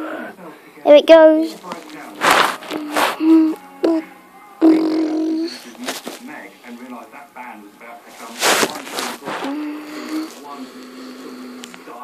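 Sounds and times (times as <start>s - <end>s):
child humming a low note: 3.2s - 5.5s.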